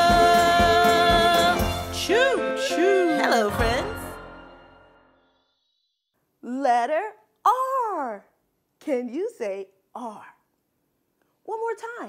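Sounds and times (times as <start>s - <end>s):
woman talking: 6.4s - 10.5s, 11.5s - 12.0s.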